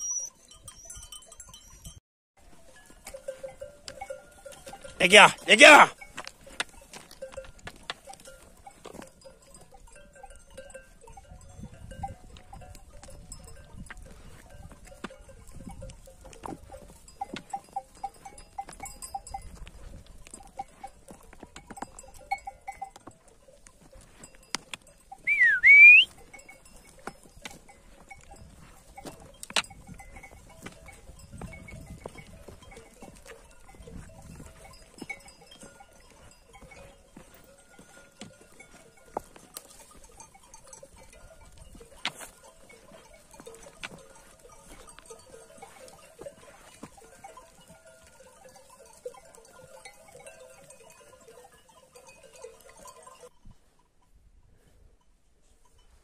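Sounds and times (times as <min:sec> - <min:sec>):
sheep bells clinking: 0:00.0 - 0:56.0
short loud whistle: 0:25.3 - 0:26.1.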